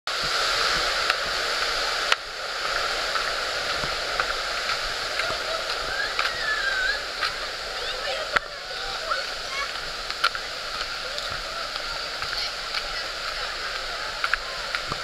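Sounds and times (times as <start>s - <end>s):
flowing river water: 0.1s - 15.0s.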